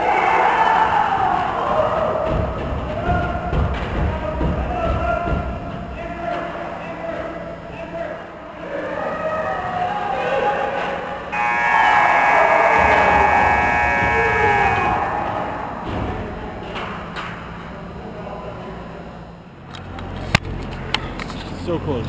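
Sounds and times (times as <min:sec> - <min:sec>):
voices in rink: 0:00.0 - 0:22.0
game horn long blast: 0:11.3 - 0:16.0.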